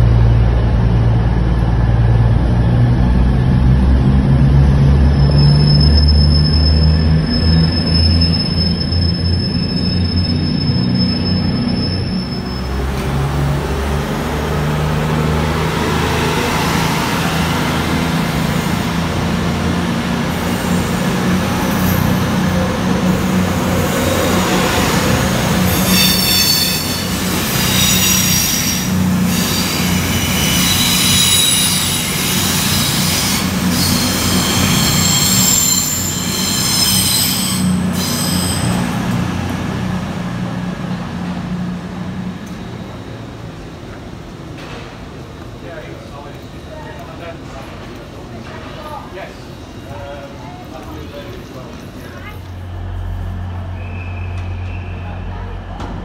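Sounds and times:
diesel train engine humming: 0.0s - 56.0s
train wheels squealing: 5.0s - 13.3s, 20.4s - 39.2s, 53.6s - 55.8s.

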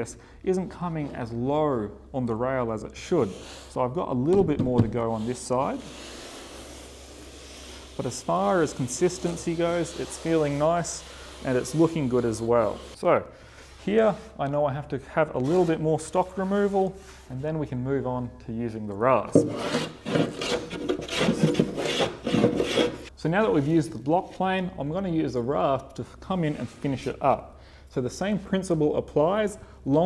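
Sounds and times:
hands rubbing wooden edge: 5.0s - 13.0s, 19.4s - 23.1s.

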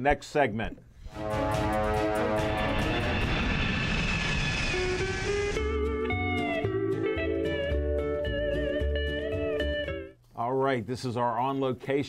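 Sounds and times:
rushing rumbling transition effect: 1.1s - 5.8s
music cue with sustained tones: 1.1s - 10.1s.

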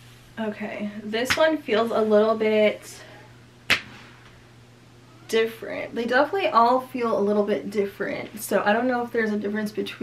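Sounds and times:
faint low hum: 0.0s - 10.0s
sharp smack: 3.7s - 4.0s.

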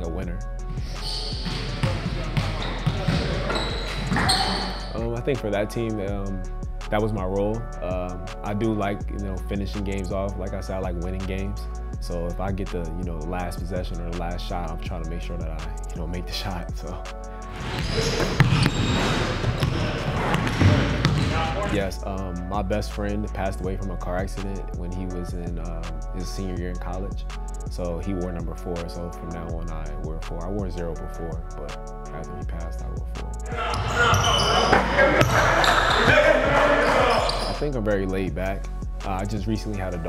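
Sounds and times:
basketball bouncing on gym floor: 1.4s - 4.8s, 17.6s - 21.5s.

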